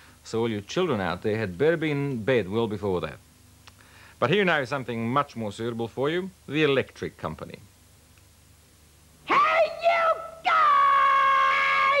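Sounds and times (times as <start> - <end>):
woman shouting: 9.3 - 12.0.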